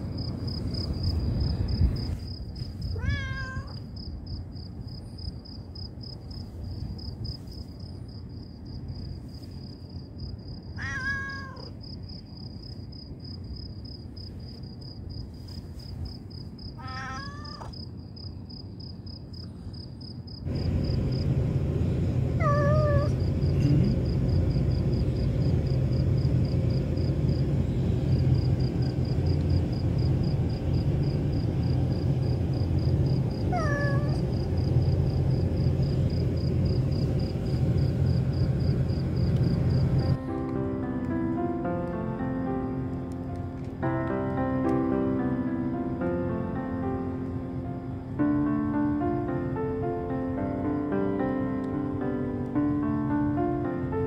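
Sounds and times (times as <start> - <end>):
low rumble: 0.0 - 3.0, 20.5 - 40.4
crickets chirping: 0.0 - 42.9, 44.8 - 53.9
cats meowing: 2.9 - 3.8, 10.8 - 11.8, 16.8 - 17.8, 22.4 - 23.1, 33.5 - 34.2.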